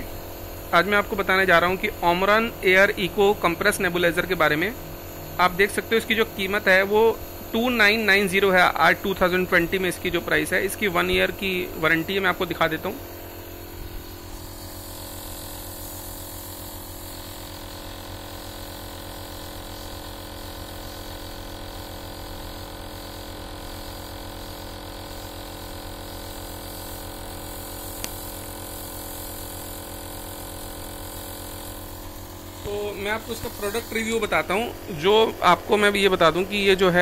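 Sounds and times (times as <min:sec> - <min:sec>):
electric motor humming: 0:00.0 - 0:37.0
sharp click: 0:28.0 - 0:28.2.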